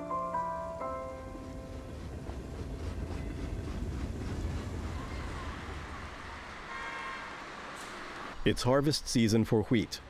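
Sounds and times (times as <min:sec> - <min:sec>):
train rumbling on tracks: 0:00.6 - 0:08.5.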